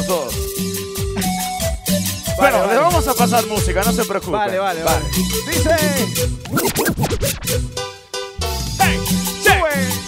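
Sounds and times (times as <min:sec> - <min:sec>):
dj scratching: 0:05.6 - 0:07.6.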